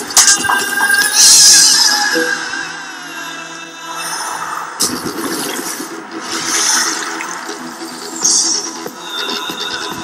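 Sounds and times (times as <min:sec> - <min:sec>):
commercial music: 0:00.0 - 0:10.0.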